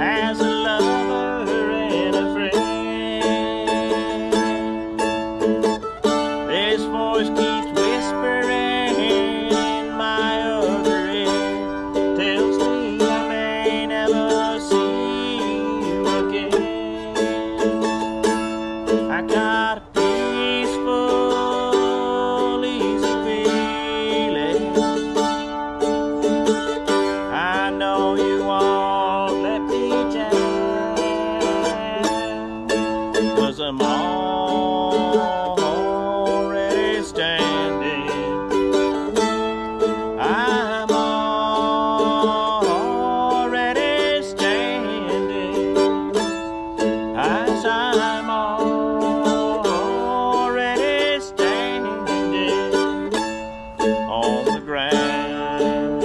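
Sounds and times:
small string instrument strummed: 0.0 - 56.0.

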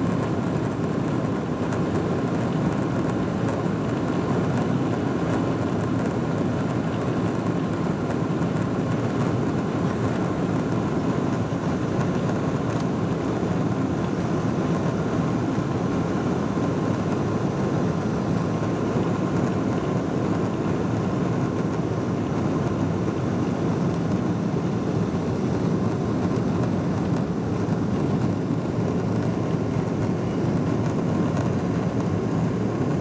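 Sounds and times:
aircraft rolling noise: 0.0 - 33.0
jet engine rumble in cabin: 0.0 - 33.0.

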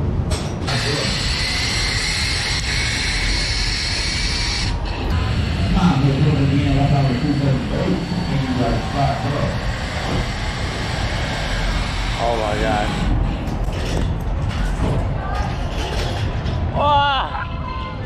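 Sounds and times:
zipline trolley on steel cable: 0.6 - 14.8
rushing noise with low rumble: 4.7 - 18.0.

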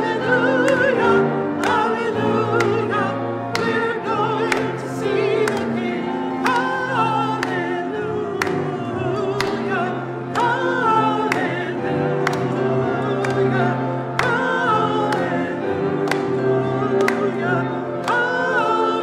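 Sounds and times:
group singing a hymn: 0.0 - 19.0
piano chords: 0.0 - 19.0.

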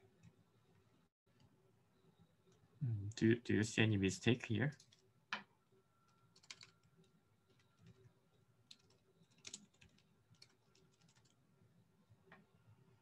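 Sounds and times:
computer keyboard keystrokes: 6.3 - 8.0, 8.7 - 11.4.

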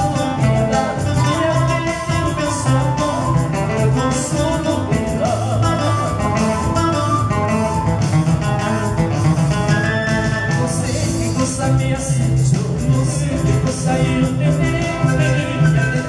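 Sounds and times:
man singing: 0.0 - 7.8, 9.7 - 16.0
guitar band playing: 0.0 - 16.0.

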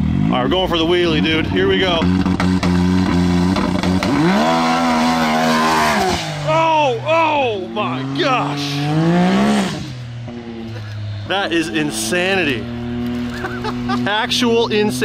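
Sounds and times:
engine idling and revving: 0.0 - 15.0.

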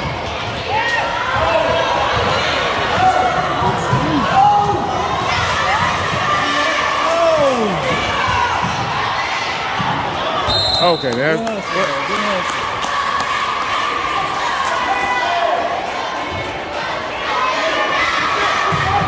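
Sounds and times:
spectators' voices and shouts: 0.0 - 19.0.

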